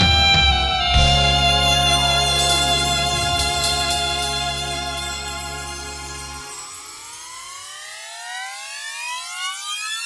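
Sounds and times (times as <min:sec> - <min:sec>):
synthesizer riser gliding upward: 0:01.2 - 0:10.0.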